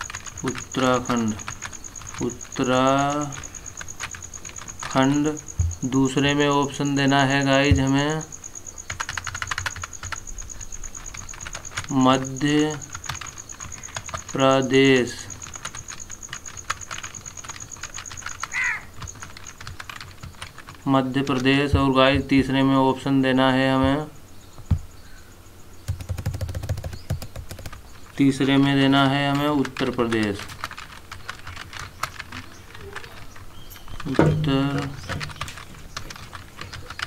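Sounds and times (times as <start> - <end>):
laptop keyboard typing: 0.0 - 22.5, 25.8 - 37.0
high falling call: 18.0 - 19.5.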